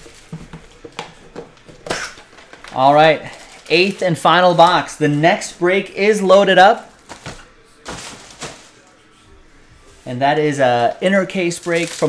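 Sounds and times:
card packaging knocks and rustles: 0:00.0 - 0:02.8, 0:07.0 - 0:08.8.

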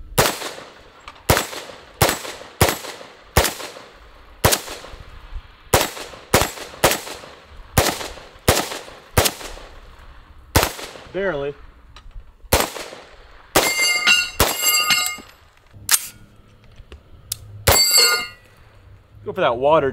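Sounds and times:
pistol gunshots with echo: 0:00.1 - 0:05.0, 0:05.7 - 0:09.8, 0:10.6 - 0:11.2, 0:12.5 - 0:15.2.

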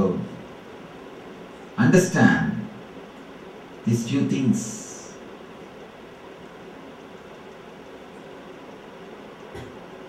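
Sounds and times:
recording hiss and hum: 0:00.0 - 0:10.0.

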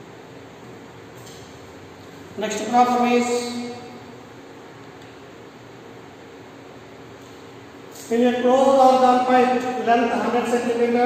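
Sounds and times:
low room tone hiss: 0:00.0 - 0:11.0.

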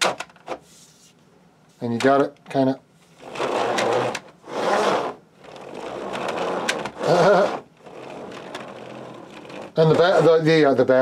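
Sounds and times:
wooden gears and wheels running: 0:03.3 - 0:10.6.

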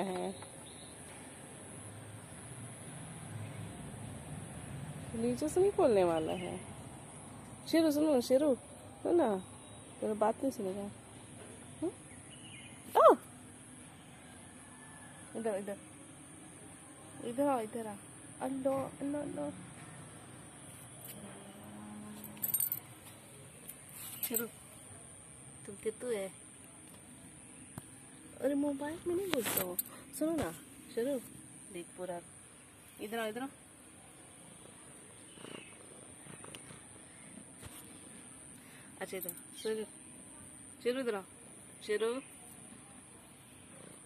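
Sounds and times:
faint steady background noise: 0:00.0 - 0:44.0.

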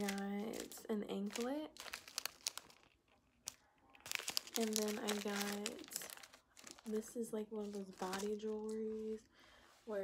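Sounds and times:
plastic bags crinkling: 0:00.0 - 0:09.2.

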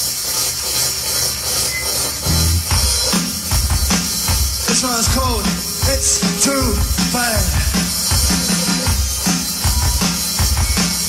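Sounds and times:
hissing rasping noise: 0:00.0 - 0:11.0
rock band playing: 0:02.2 - 0:11.0.

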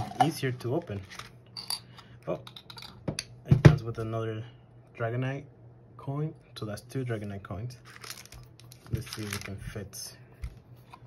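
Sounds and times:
plastic wrapper crinkle: 0:07.8 - 0:09.6.

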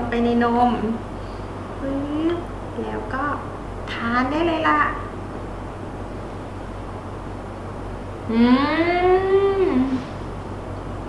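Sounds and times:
low room hum: 0:00.0 - 0:11.0
woman humming mmm: 0:08.2 - 0:10.3.

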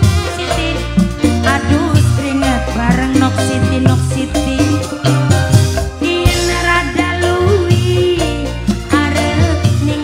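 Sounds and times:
live band music through pa: 0:00.0 - 0:10.0.

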